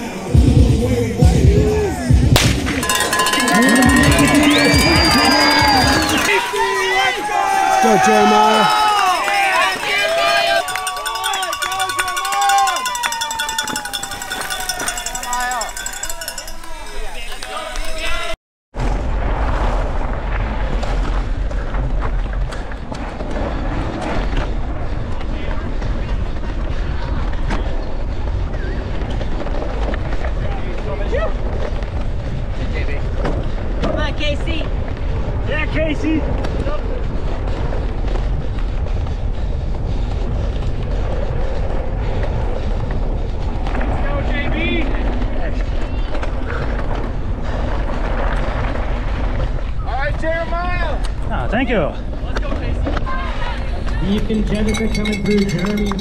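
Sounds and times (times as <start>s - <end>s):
wind rumble on microphone: 18.8s - 56.0s.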